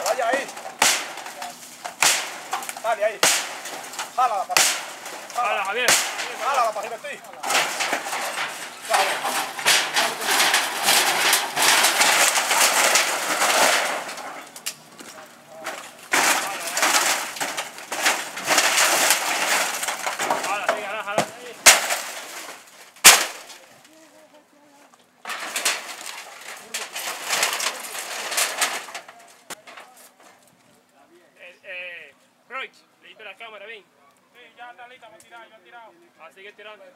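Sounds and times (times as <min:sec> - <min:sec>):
metal sheets rattling and crashing: 0:00.0 - 0:23.7, 0:25.2 - 0:29.9
wood cracking and splintering: 0:00.0 - 0:24.0, 0:25.2 - 0:30.2.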